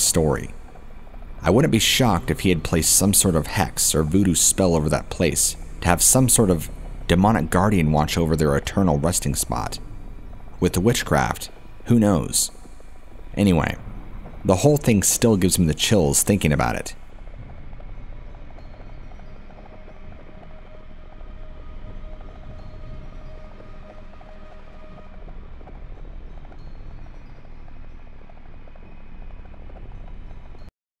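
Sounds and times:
low rumble: 0.0 - 30.7.

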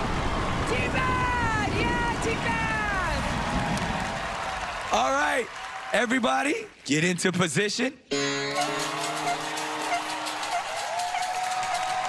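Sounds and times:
studio audience cheering: 0.0 - 6.6, 8.6 - 12.0
high held note: 8.1 - 12.0.

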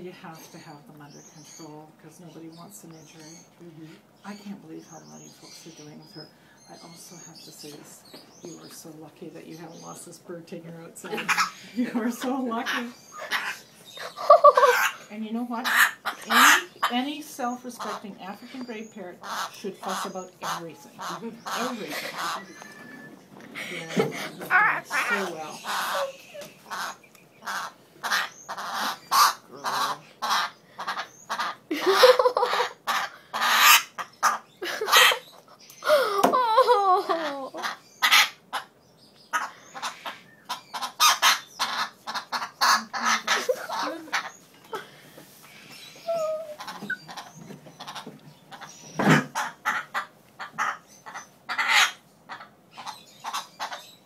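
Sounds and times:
parrot squawking: 11.0 - 36.0, 36.6 - 45.0, 45.7 - 54.0.

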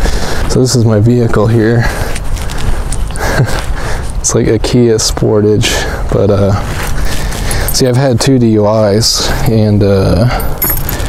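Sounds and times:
person laughing: 3.2 - 3.7.

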